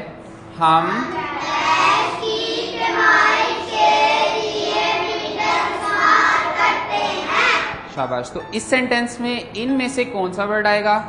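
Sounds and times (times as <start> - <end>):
children reading aloud in unison: 1.0 - 8.0.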